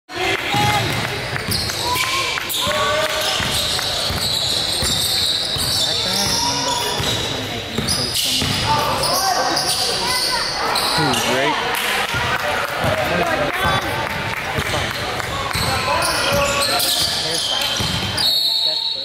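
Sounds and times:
players and spectators shouting: 0:00.1 - 0:04.1, 0:05.5 - 0:07.4, 0:08.5 - 0:17.8.

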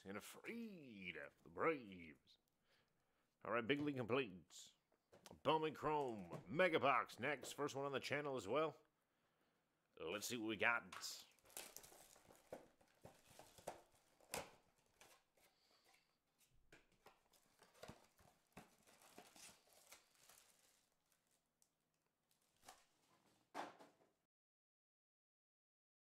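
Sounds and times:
plastic wrap crinkling and tearing: 0:11.2 - 0:16.0, 0:17.0 - 0:23.4
cardboard box handled: 0:11.5 - 0:16.0.

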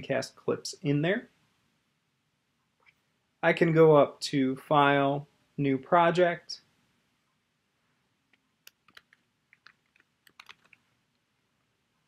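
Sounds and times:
keyboard typing clicks: 0:08.7 - 0:10.8.

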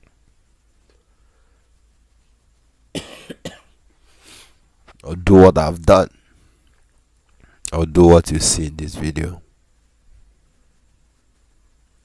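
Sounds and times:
man coughing: 0:02.9 - 0:03.8.

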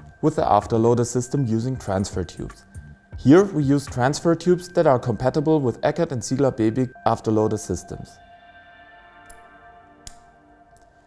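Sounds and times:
soft background music: 0:00.0 - 0:11.0.

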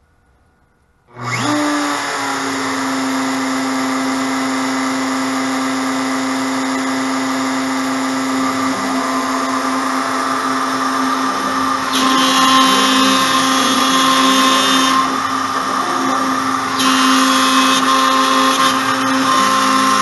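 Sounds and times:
router spinning up and whining: 0:01.1 - 0:20.0.

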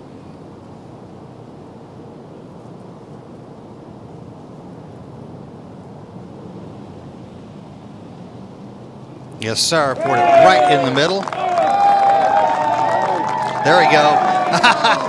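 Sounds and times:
low outdoor background noise: 0:00.0 - 0:15.0.

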